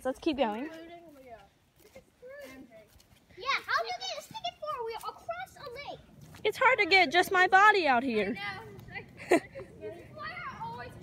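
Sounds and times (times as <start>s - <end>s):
children's voices: 0.6s - 11.0s
child exclaiming: 3.4s - 6.0s, 9.8s - 11.0s.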